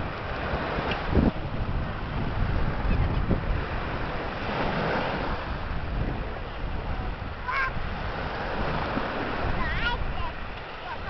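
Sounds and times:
waves washing onto sand: 0.0s - 11.0s
wind buffeting microphone: 0.0s - 11.0s.

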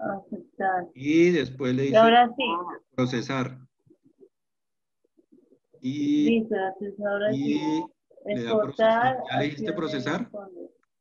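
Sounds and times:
man speaking: 1.0s - 2.2s, 3.0s - 3.7s, 5.8s - 6.5s, 7.3s - 10.4s.

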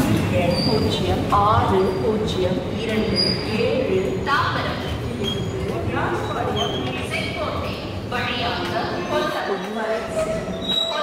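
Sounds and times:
train coaches rumbling: 0.0s - 11.0s
voices: 0.0s - 11.0s.

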